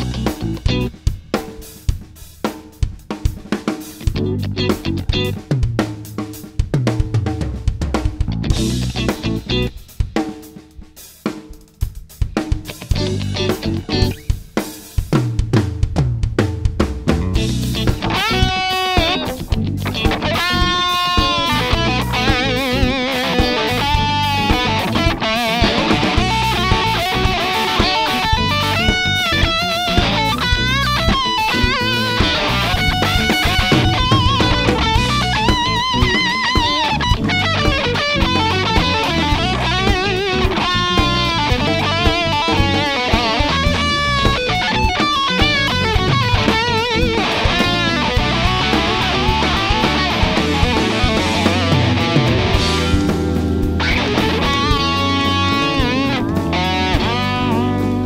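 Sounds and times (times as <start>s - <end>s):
lead guitar bending notes: 0.0s - 1.0s, 4.1s - 6.2s, 8.3s - 9.8s, 12.7s - 14.3s, 17.1s - 58.0s
drum kit played hard: 0.0s - 58.0s
rock backing track: 0.0s - 58.0s.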